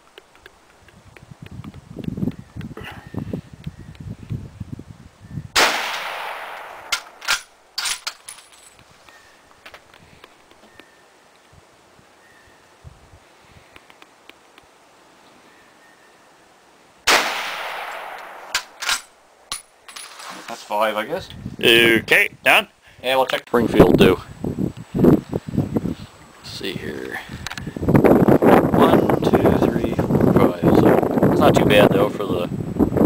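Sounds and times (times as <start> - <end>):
rifle shots with echo: 5.6 - 7.4, 17.1 - 19.0
metallic clicks of rifle bolt: 18.1 - 20.0.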